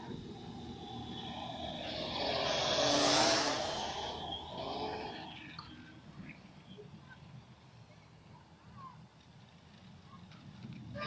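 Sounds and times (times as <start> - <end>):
quadcopter drone propeller whine: 0.0 - 6.8.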